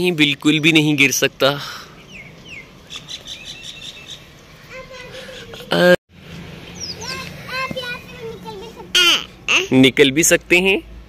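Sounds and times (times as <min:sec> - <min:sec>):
birds chirping: 0:00.0 - 0:10.4.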